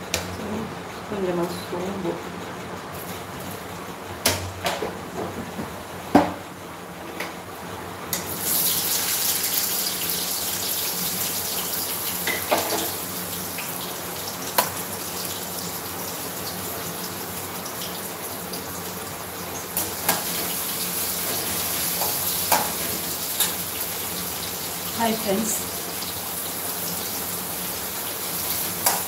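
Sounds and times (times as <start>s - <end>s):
rice sizzling in a pan: 8.1s - 29.0s.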